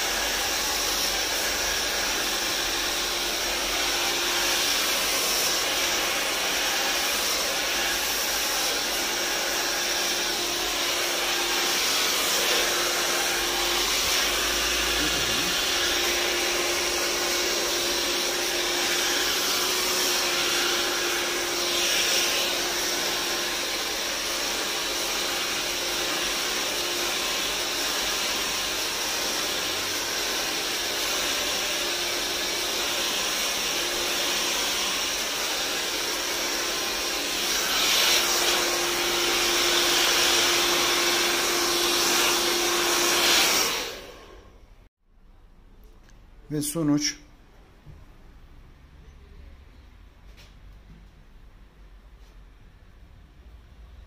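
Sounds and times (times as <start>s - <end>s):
hair dryer blowing: 0.0s - 44.8s.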